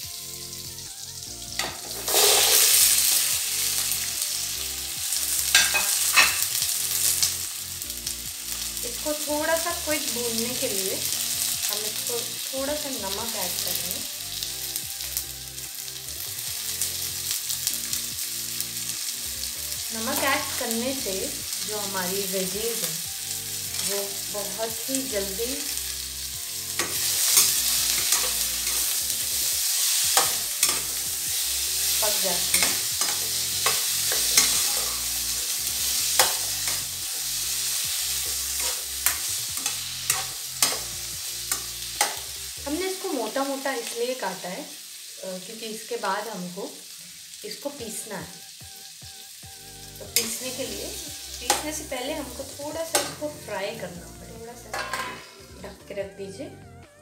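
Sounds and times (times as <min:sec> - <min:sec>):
onions frying in oil: 0:00.0 - 0:55.8
spatula scraping a pan: 0:01.6 - 0:03.3, 0:26.6 - 0:42.3, 0:54.7 - 0:55.4.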